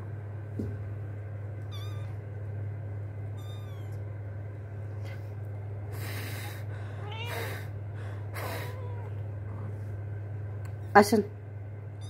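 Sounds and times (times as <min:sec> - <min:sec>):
steady low hum: 0:00.0 - 0:12.0
kitten mewing: 0:03.4 - 0:04.0, 0:07.0 - 0:07.7, 0:08.4 - 0:09.2.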